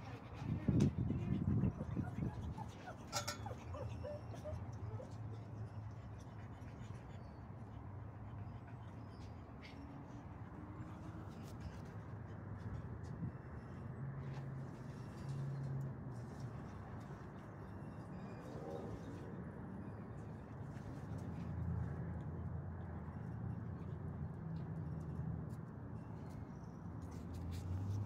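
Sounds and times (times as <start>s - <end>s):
outdoor background rumble and hiss: 0.0s - 28.0s.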